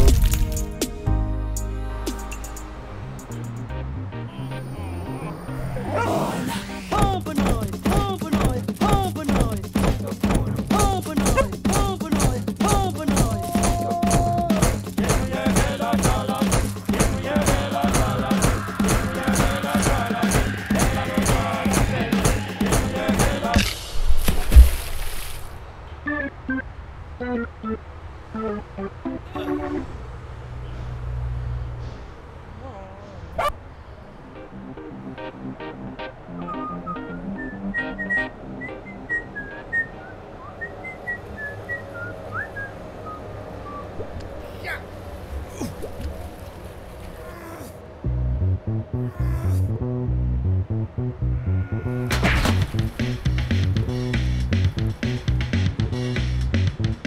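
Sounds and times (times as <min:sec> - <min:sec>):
reggae dancehall music: 0:00.0 - 0:05.5, 0:06.4 - 0:24.0, 0:52.2 - 0:57.0
light pitched music: 0:00.0 - 0:05.6
dog yipping and whimpering: 0:11.3 - 0:11.5, 0:32.7 - 0:33.6
dog barking: 0:11.3 - 0:11.6, 0:33.3 - 0:33.6
low bass note: 0:48.0 - 0:56.9.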